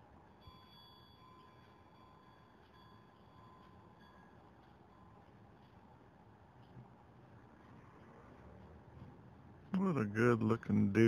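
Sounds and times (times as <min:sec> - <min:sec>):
faint high steady tones: 0:00.0 - 0:07.4.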